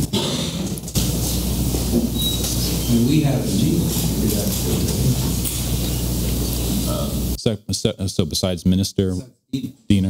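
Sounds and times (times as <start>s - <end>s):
loud steady hiss: 1.0s - 7.4s.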